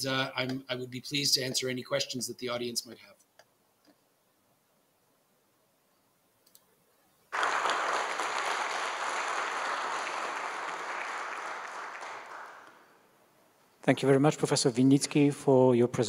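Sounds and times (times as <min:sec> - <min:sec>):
audience applauding: 0:07.3 - 0:12.9.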